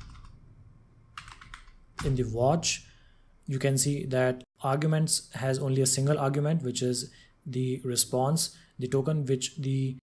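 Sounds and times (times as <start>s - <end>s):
faint keyboard typing: 0.0s - 0.4s, 1.1s - 2.2s.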